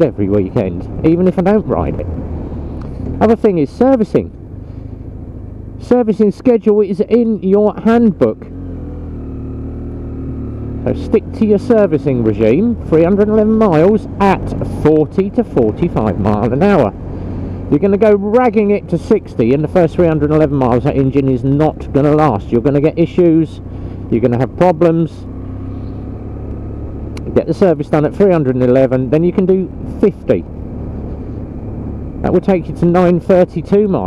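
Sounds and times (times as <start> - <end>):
motorcycle engine cruising: 0.0 - 34.0
wind and road rumble: 0.0 - 34.0.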